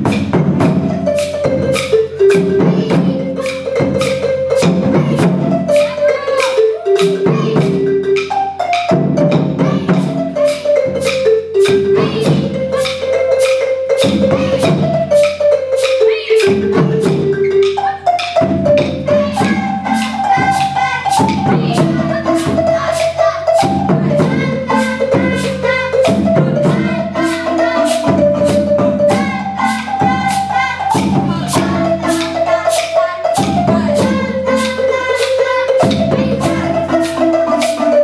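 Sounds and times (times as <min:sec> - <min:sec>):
marimba melody: 0:00.0 - 0:38.0
steady clicking beat: 0:00.0 - 0:38.0.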